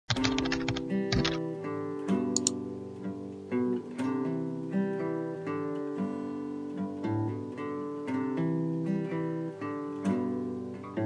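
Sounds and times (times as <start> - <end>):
keyboard typing clicks: 0.1 - 1.4, 2.3 - 2.6.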